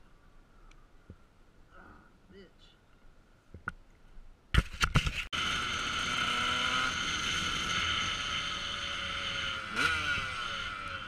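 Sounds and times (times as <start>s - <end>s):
motorcycle engine accelerating: 5.4s - 11.0s.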